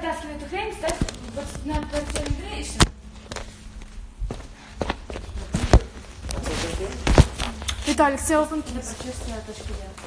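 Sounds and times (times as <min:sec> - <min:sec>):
footsteps on hard floor: 0:03.2 - 0:10.0.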